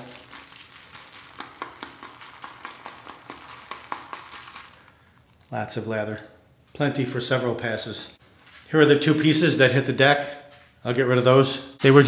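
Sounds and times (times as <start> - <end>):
shaving brush squishing lather: 0.0 - 5.6.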